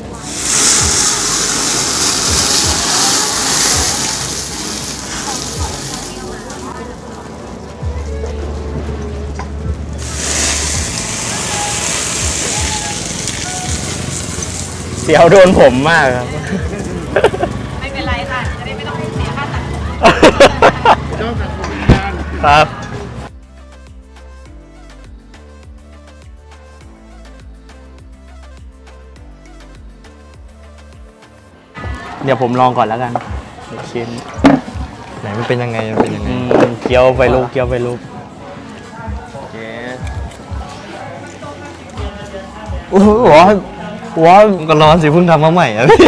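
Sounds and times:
pan flaring up: 0.0 - 6.9, 10.0 - 16.0
crowd chatter: 0.0 - 23.3, 31.7 - 45.9
dumplings sizzling in hot oil: 0.2 - 6.7, 10.0 - 16.0
hearty laughter: 16.4 - 17.6, 20.0 - 21.1.

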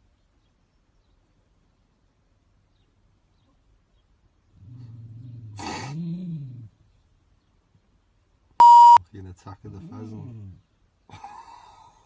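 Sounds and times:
loud one-pitch beep: 8.6 - 9.0.

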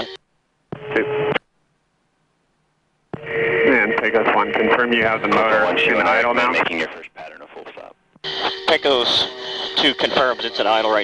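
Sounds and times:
steady low radio tone: 0.0 - 1.4, 3.2 - 11.0
radio voice transmissions: 3.7 - 11.0.

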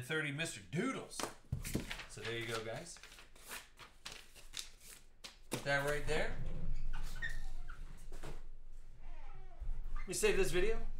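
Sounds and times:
paper rustling: 1.5 - 6.1.

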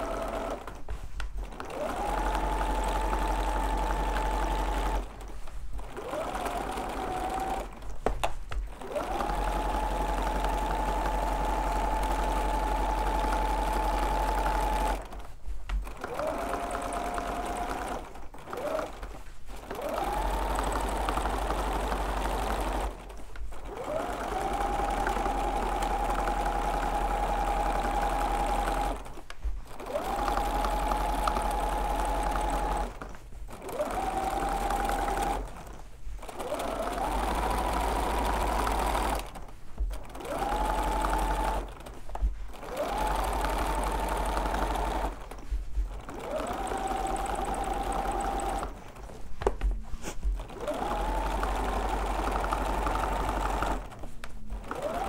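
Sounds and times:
sewing machine motor whine: 0.0 - 0.8, 1.4 - 49.7, 50.3 - 55.0.

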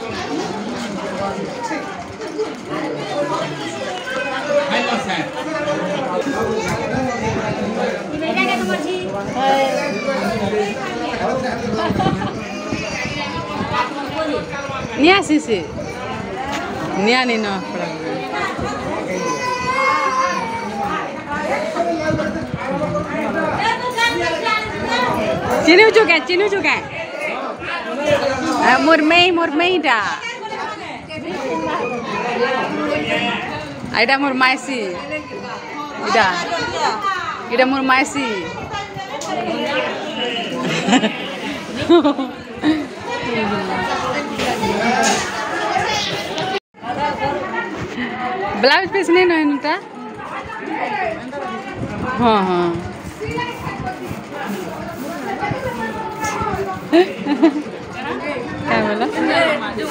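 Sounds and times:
lively chatter of voices: 0.0 - 59.9
women and children talking: 0.0 - 59.9.

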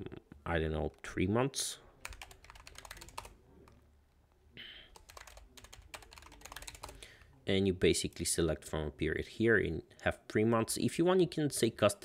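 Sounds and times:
keyboard typing: 2.0 - 3.4, 4.9 - 7.0.

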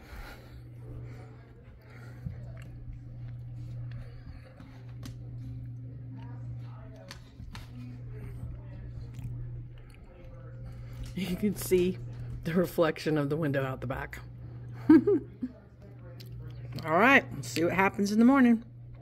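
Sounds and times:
faint background voices: 0.0 - 12.6
steady low hum: 0.0 - 19.0.

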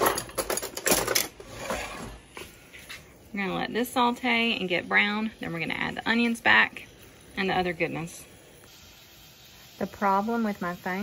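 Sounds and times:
beef sizzling in a skillet: 2.2 - 11.0.

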